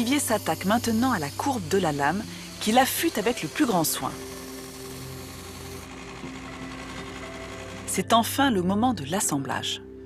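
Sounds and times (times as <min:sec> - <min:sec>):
knife blade grinding hiss: 0:00.0 - 0:05.9
belt grinder motor hum: 0:00.0 - 0:08.1.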